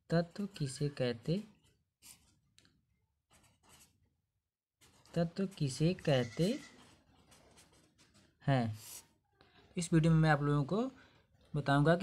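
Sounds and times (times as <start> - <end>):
pen scratching on paper: 2.0 - 2.6, 3.2 - 4.2, 4.8 - 9.2.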